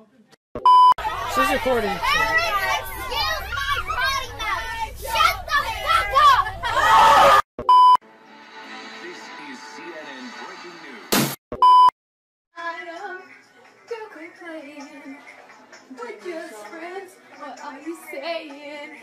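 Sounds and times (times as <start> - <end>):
faint voices: 1.0 - 6.8
short electronic bleep: 7.6 - 8.0, 11.6 - 11.9.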